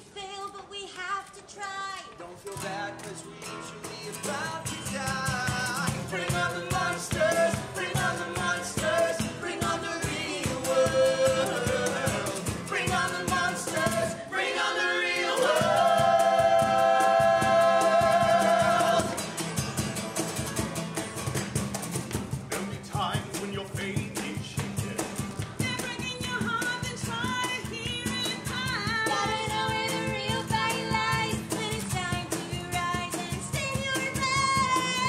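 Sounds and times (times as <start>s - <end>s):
strummed acoustic guitar: 2.5s - 14.4s, 15.2s - 35.0s
group singing: 4.2s - 19.5s, 28.8s - 32.0s.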